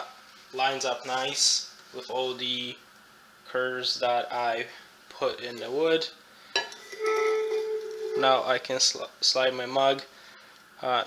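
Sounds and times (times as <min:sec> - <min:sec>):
steady ringing tone: 0:06.6 - 0:08.4.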